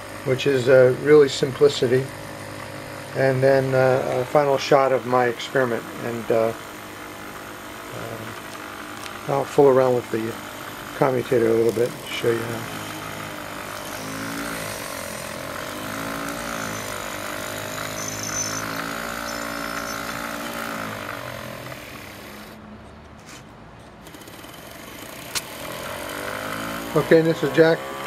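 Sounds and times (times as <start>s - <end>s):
electric motor fast buzz: 0.0s - 22.7s, 24.0s - 28.0s.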